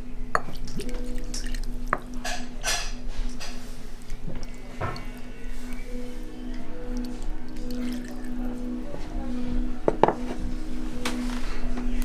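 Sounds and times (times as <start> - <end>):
background music with low notes: 0.0 - 12.0
ceramic bowls knocking on wood: 9.9 - 10.3.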